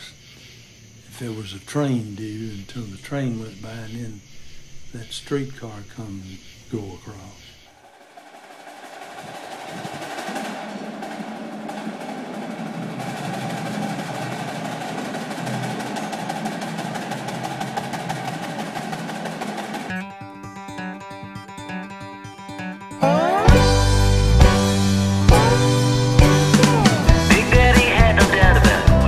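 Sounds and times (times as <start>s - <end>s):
sparse drum rhythm: 7.7s - 20.2s, 23.3s - 29.0s
snare drum roll: 7.8s - 20.0s, 23.0s - 29.0s.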